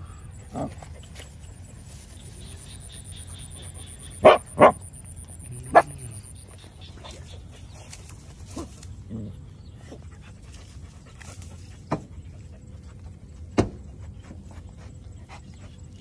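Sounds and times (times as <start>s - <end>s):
faint rustling in grass: 0.7s - 3.4s, 7.1s - 9.2s
dog barking: 4.1s - 4.9s, 5.6s - 6.2s.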